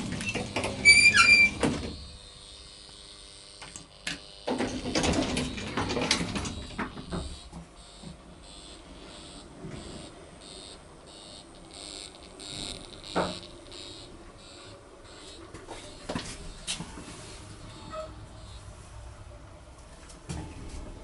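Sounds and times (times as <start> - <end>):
elevator door rattling shut: 4.5 - 7.3.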